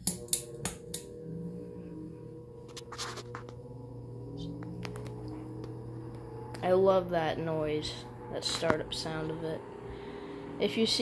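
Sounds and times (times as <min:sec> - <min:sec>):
desk fan motor humming: 0:00.0 - 0:11.0.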